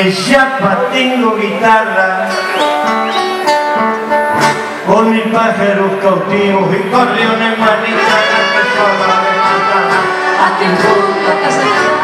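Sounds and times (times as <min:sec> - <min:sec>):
accordion chords: 0:00.0 - 0:12.0
acoustic guitar: 0:00.0 - 0:12.0
person singing: 0:04.8 - 0:12.0.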